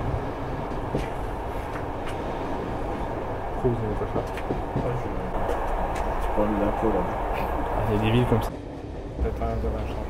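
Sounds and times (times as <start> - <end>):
train rumbling: 0.0 - 10.0.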